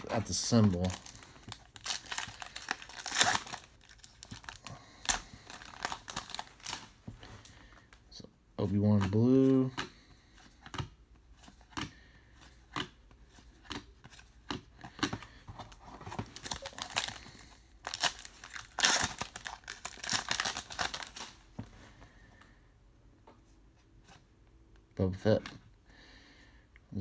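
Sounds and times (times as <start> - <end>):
wrapper tearing and crinkling: 0.0 - 6.9, 16.4 - 17.2, 17.8 - 21.4.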